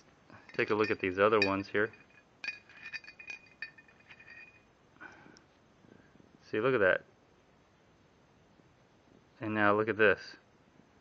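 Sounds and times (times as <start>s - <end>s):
steel drill bits clinking: 0.3s - 4.7s.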